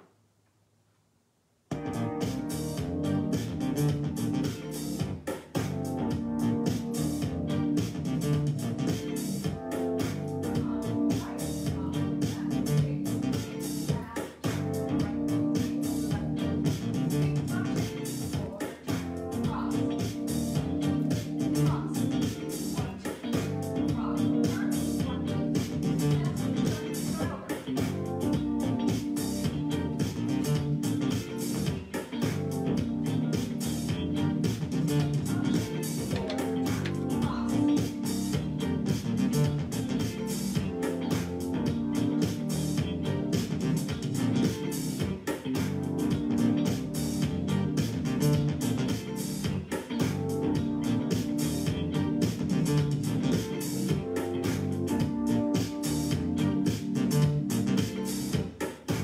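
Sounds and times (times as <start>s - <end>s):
guitar-led dance music: 1.7s - 59.0s.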